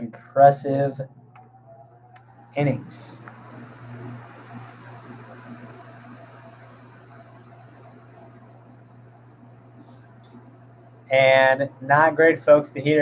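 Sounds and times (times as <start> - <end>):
heater fan blowing: 0.0 - 13.0.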